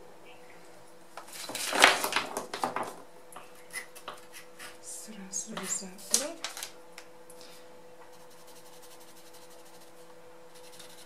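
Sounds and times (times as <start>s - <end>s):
pencil rubbing on paper: 8.1s - 11.0s.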